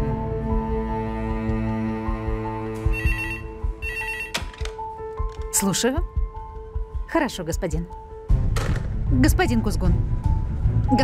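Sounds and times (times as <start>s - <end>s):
background music: 0.0s - 11.0s
telephone ringing: 2.9s - 4.4s.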